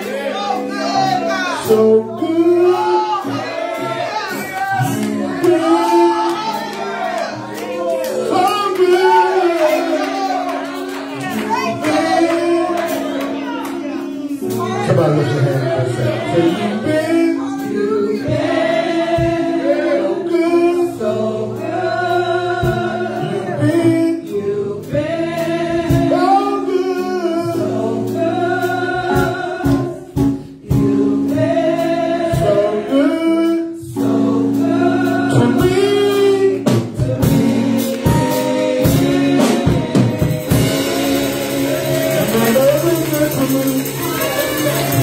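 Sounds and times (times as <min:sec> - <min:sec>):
women singing gospel song: 0:00.0 - 0:45.0.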